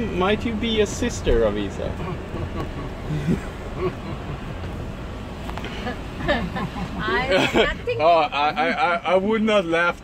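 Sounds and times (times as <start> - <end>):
car engine and road noise: 0.0 - 10.0
people laughing: 2.0 - 4.7, 5.7 - 9.2.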